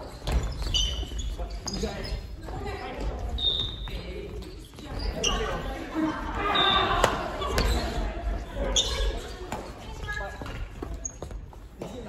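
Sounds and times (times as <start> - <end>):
players' voices: 0.0 - 12.0
shoes squeaking on floor: 0.0 - 12.0.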